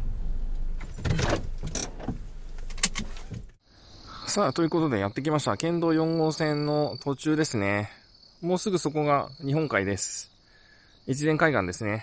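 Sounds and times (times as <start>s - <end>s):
low engine hum in car cabin: 0.0s - 3.6s.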